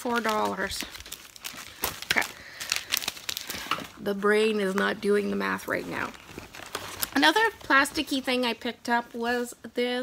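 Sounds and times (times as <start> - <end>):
plastic packaging crinkling: 0.0 - 8.7.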